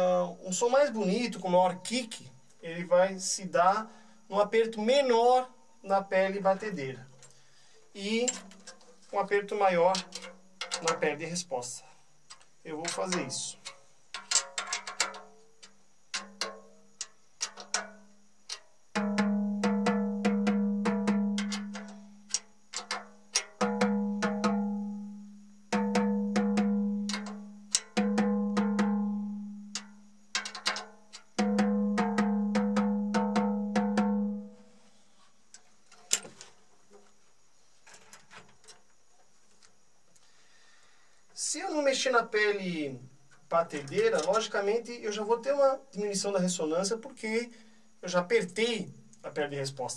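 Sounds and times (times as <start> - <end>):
faint clicks: 12.3 - 17.8.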